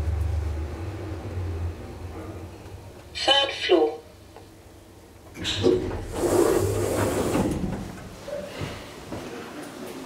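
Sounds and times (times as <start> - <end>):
elevator doors sliding open: 5.2 - 8.3.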